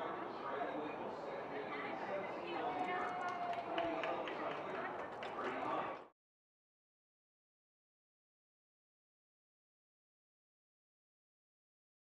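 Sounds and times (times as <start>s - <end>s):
open-air ambient noise: 0.0s - 6.1s
people talking: 0.0s - 6.1s.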